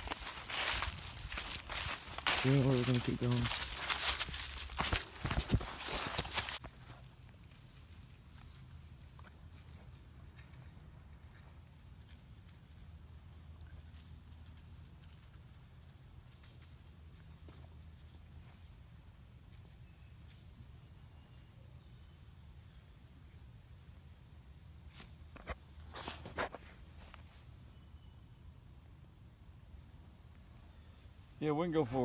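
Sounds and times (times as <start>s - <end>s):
dry leaves rustling: 0.0s - 9.7s
crackling rustles and clicks: 0.0s - 18.1s.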